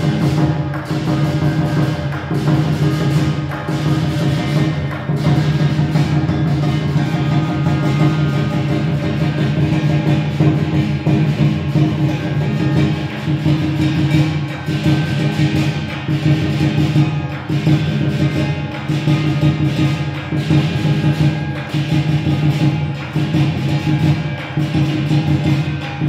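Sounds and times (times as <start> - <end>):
hand cymbals clashing: 0.0 - 26.0
large drum beaten rapidly: 0.0 - 26.0.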